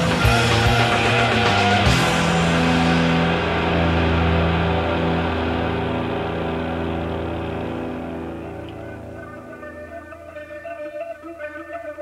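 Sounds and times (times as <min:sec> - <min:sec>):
distorted rock guitar chord: 0:00.0 - 0:10.6.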